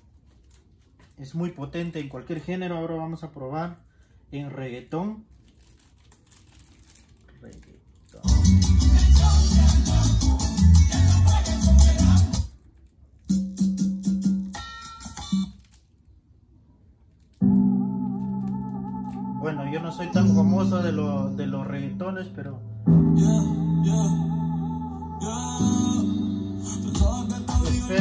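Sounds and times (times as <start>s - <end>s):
latin music with heavy bass: 8.2s - 12.6s, 13.3s - 15.6s, 19.2s - 28.0s.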